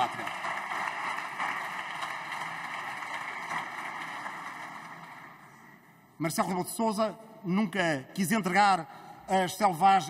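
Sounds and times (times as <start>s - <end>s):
applause: 0.0s - 5.8s.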